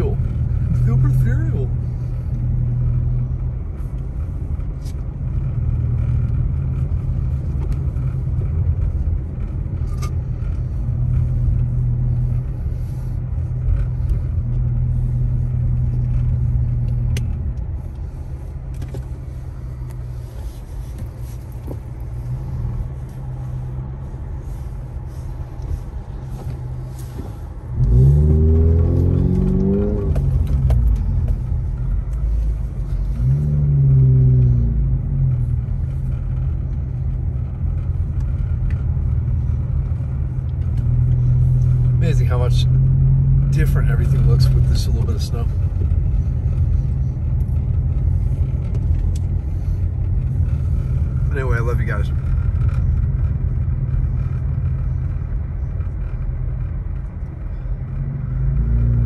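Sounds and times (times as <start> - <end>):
vehicle engine and tyres droning: 0.0 - 59.0.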